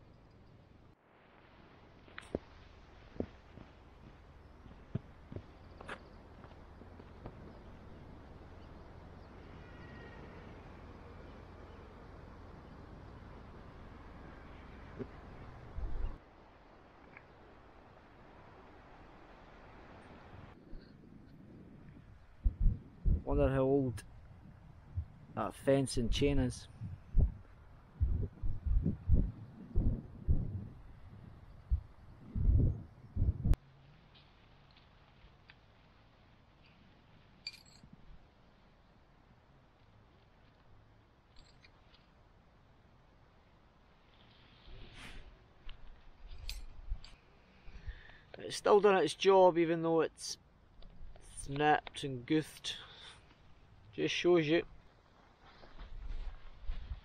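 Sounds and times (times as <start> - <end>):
wind rumbling on microphone: 0.0 - 33.6, 44.0 - 48.1, 54.6 - 57.0
faint footsteps on path: 1.8 - 10.0, 54.6 - 57.0
faint bird chirps: 8.5 - 12.8
wind buffeting microphone: 10.6 - 16.2, 20.1 - 25.4, 26.0 - 33.6, 55.7 - 57.0.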